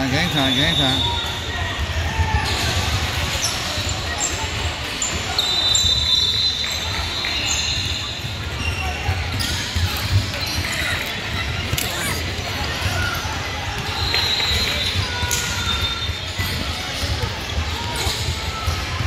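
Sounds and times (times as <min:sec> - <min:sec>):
sneakers squeaking: 0:00.0 - 0:19.0.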